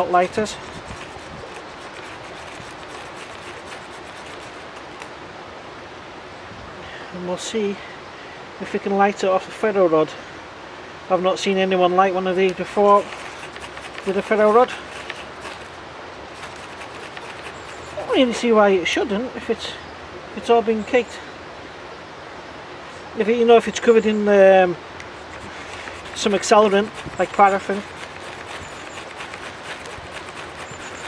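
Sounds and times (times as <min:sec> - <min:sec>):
ferro rod scraped with striker: 0:00.0 - 0:05.1, 0:12.7 - 0:15.8, 0:16.4 - 0:18.4, 0:25.2 - 0:31.0.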